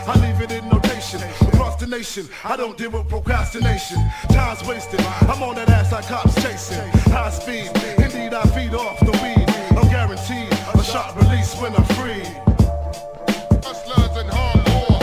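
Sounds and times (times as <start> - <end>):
deep bass line: 0.0 - 1.9, 3.0 - 15.0
rapping over a beat: 0.0 - 15.0.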